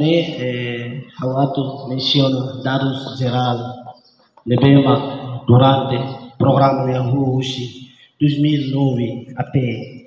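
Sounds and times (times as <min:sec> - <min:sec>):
man speaking into a microphone: 0:00.0 - 0:03.8, 0:04.5 - 0:10.0.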